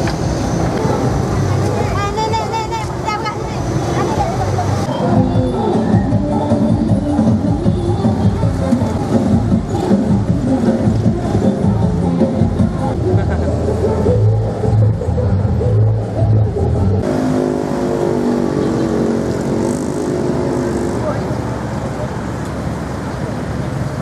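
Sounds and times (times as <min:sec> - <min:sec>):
voices: 0:00.0 - 0:17.1, 0:17.8 - 0:23.9
vehicle engines running: 0:00.0 - 0:24.0
deep engine hum: 0:04.2 - 0:23.9.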